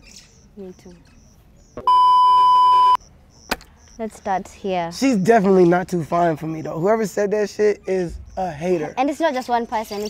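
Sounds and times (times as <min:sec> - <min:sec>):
electronic test-tone beep: 0:01.8 - 0:03.0.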